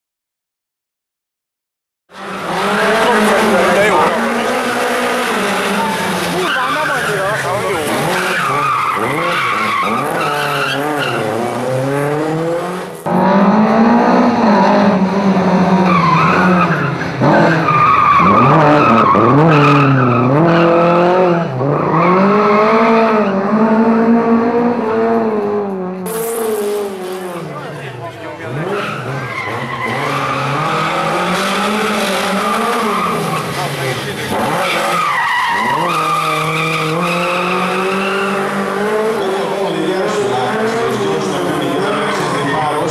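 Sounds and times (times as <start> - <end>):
rally car engine revving: 2.1 - 42.9
tyres squealing: 2.8 - 11.4, 31.5 - 42.9.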